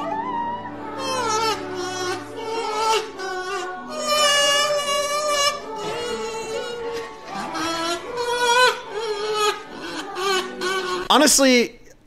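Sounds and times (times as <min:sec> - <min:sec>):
voice holding long pitched notes: 0:00.0 - 0:11.1.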